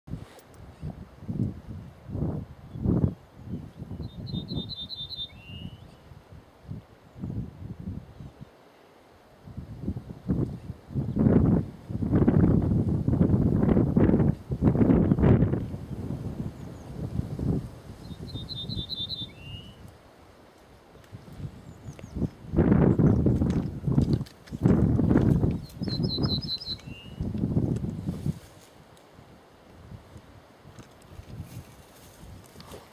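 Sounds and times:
wind rumbling on microphone: 0.1 - 8.6, 9.4 - 32.9
bird singing: 3.0 - 6.0, 18.0 - 19.8, 25.6 - 27.3.

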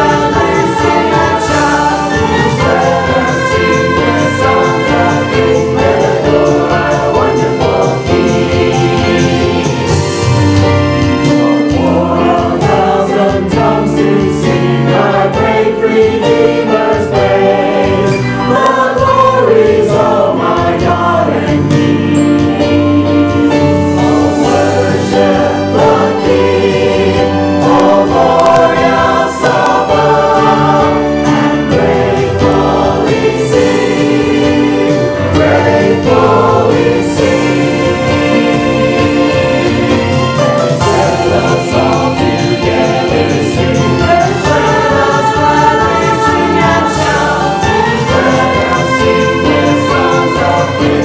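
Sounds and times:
choir singing a gospel hymn: 0.0 - 51.0
keyboard: 0.0 - 51.0.

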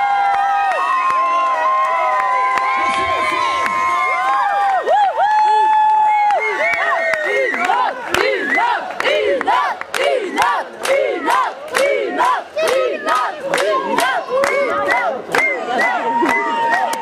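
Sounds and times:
crowd shouting in rhythm: 2.0 - 5.3, 6.3 - 17.0
sharp claps: 6.3 - 17.0.

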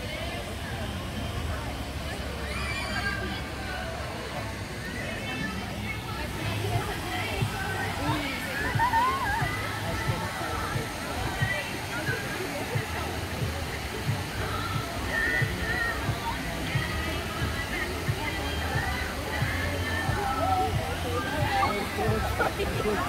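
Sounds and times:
churning white water rushing: 0.0 - 23.0
distant voices: 0.0 - 23.0
background music: 4.4 - 23.0.

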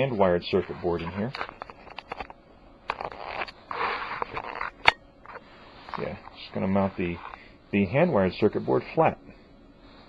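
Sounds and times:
soft rustling handling noise: 0.0 - 2.4, 4.2 - 9.2.

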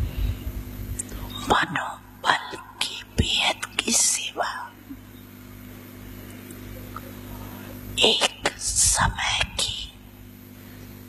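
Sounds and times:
low electrical hum: 0.0 - 11.0
woman talking into microphone: 8.0 - 9.9.

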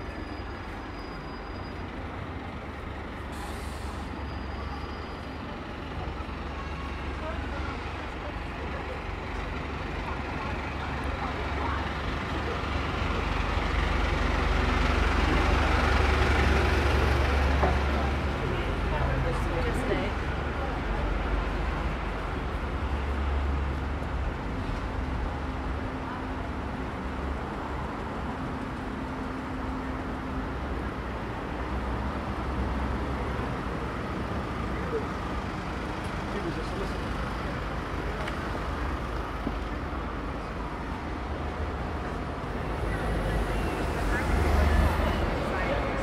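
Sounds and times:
passers-by talking: 0.0 - 46.0
traffic engine rumble: 0.0 - 46.0.

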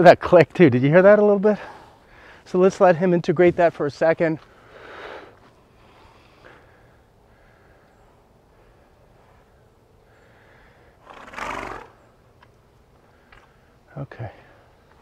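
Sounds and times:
pony snorting: 11.0 - 12.0.

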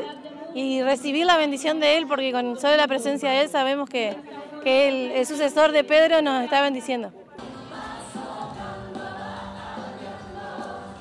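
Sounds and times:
choir singing a hymn: 7.4 - 11.0.

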